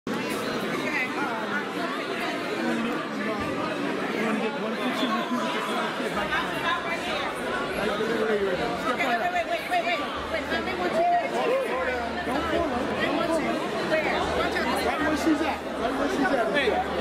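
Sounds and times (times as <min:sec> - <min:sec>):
crowd chatter: 0:00.1 - 0:17.0.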